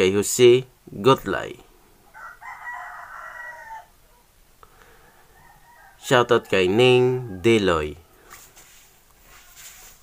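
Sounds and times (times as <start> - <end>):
rooster crowing faintly: 2.0 - 10.0.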